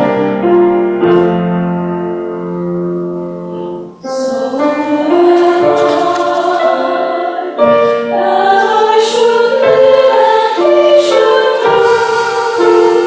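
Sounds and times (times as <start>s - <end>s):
piano accompaniment: 0.0s - 13.0s
choir singing: 4.0s - 13.0s.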